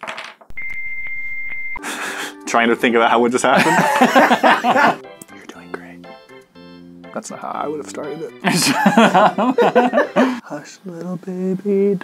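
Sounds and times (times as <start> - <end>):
censor bleep tone: 0.5 - 1.8.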